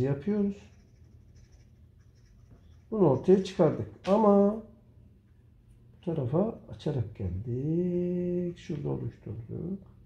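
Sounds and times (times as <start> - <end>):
pen nib scratching wood: 0.5 - 4.1.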